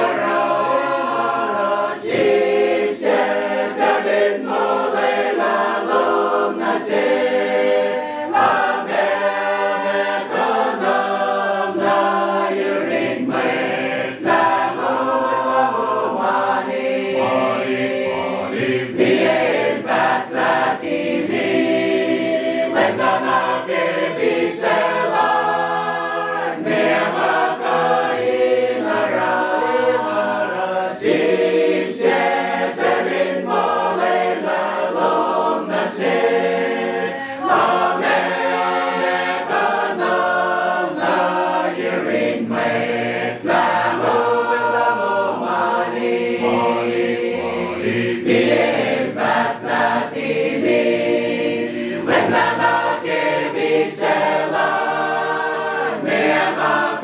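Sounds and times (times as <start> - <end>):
choir singing a hymn: 0.0 - 57.0.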